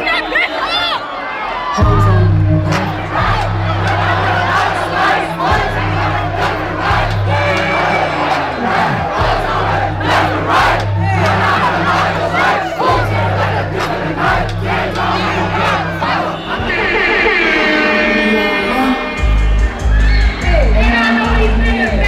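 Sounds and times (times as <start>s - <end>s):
crowd yelling and shouting: 0.0s - 22.0s
hip-hop track heavy bass: 1.8s - 22.0s.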